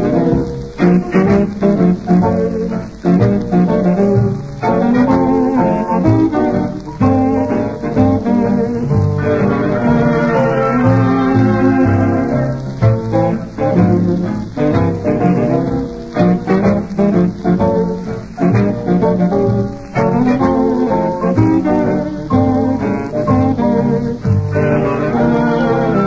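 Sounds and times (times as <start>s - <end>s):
old swing dance orchestra: 0.0s - 26.0s.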